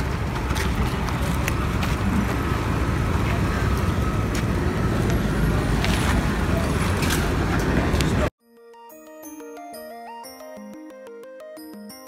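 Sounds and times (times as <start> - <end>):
low outdoor rumble: 0.0 - 8.3.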